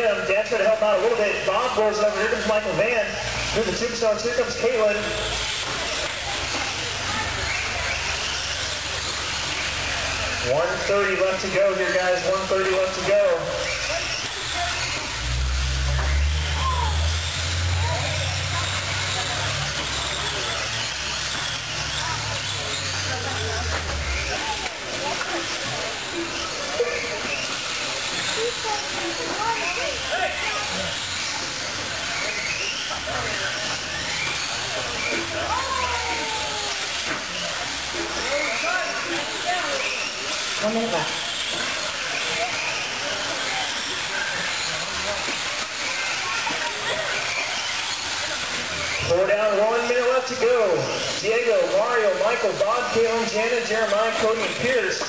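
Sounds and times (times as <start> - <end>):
rc car motors whining: 0.0 - 55.0.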